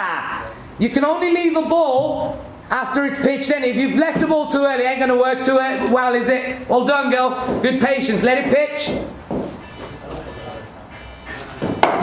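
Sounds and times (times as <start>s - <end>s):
murmur of sports hall: 0.0s - 12.0s.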